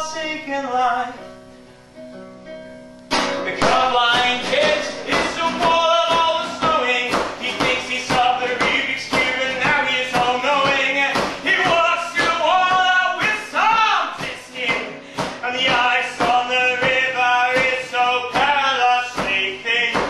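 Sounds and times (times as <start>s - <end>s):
man singing without words: 0.0s - 1.2s, 3.4s - 20.0s
classical guitar strumming: 0.0s - 20.0s.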